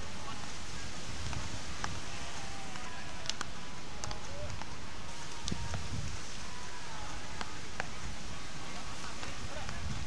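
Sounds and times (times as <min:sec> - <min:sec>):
surf hiss: 0:00.0 - 0:10.0
wind: 0:00.0 - 0:10.0.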